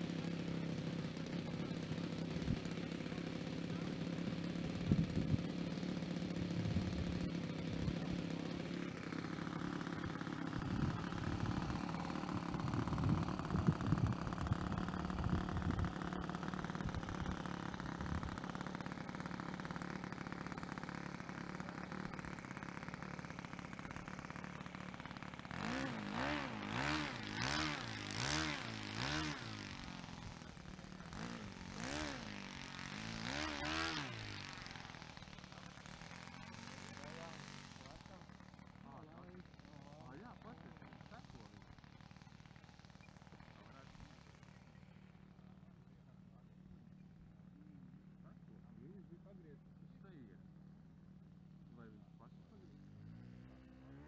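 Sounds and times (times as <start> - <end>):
model aircraft engine: 0.0 - 54.0.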